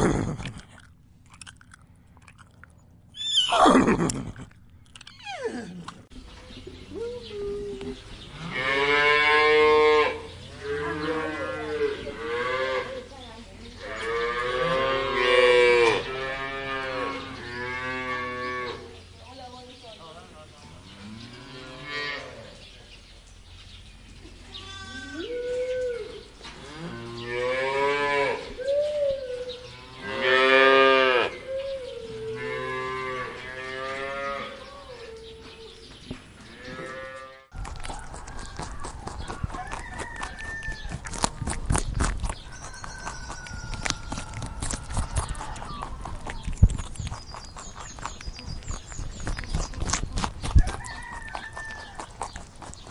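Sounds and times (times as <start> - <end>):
cows mooing: 8.4 - 13.0, 13.8 - 18.8, 29.9 - 31.4.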